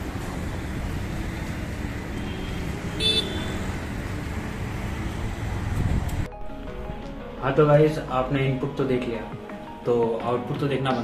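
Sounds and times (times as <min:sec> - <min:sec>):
street traffic rumble: 0:00.0 - 0:06.3
vehicle horn toot: 0:02.2 - 0:03.7.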